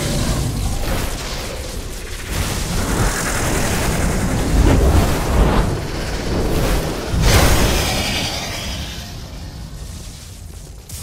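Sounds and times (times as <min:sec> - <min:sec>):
heavy rumbling battle sound effects: 0:00.0 - 0:11.0.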